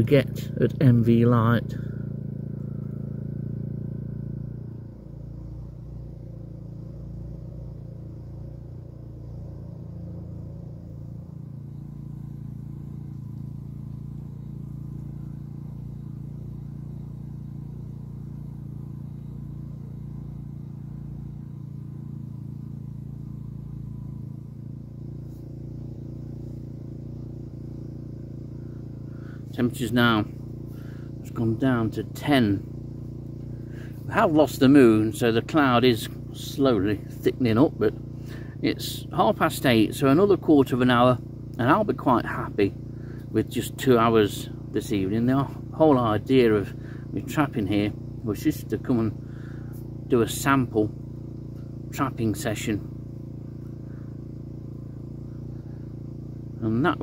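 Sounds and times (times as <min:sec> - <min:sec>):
small engine humming: 0:00.0 - 0:57.0.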